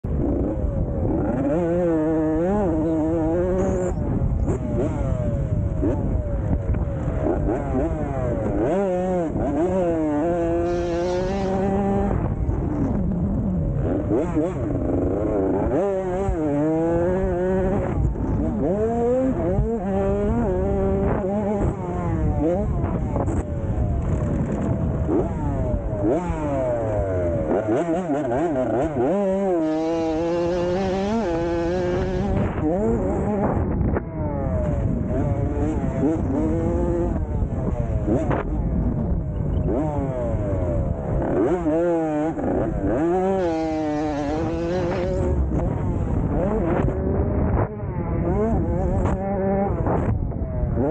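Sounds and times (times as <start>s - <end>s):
dirt bike engine revving: 0.1s - 50.9s.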